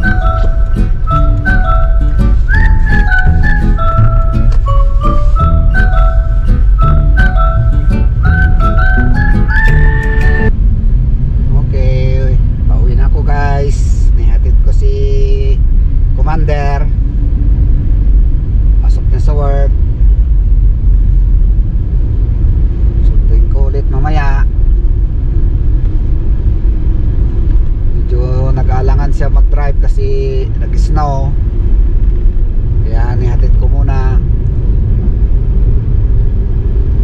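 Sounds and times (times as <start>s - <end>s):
car cabin road rumble: 0.0s - 37.0s.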